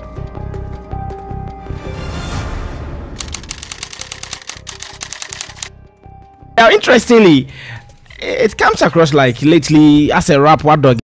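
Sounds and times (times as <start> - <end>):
rapid typewriter-style ticking: 3.2 - 5.7.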